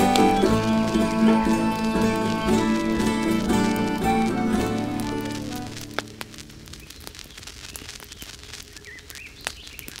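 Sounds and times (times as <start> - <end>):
faint crackles and clicks: 0.0 - 10.0.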